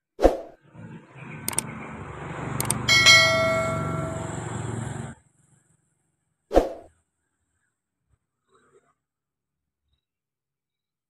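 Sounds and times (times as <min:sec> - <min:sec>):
double mouse click: 0:01.5 - 0:01.7
bright bell ding: 0:02.9 - 0:04.5.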